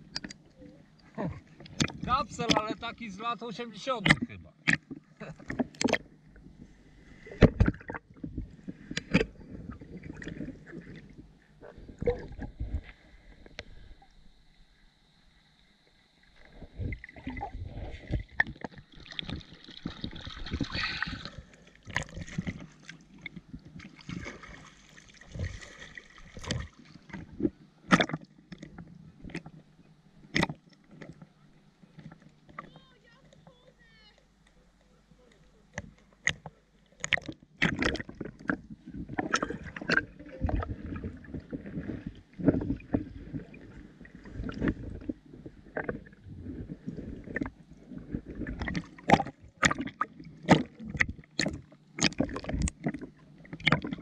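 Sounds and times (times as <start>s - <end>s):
water sloshing and splashing: 0.0s - 14.3s, 16.2s - 54.0s.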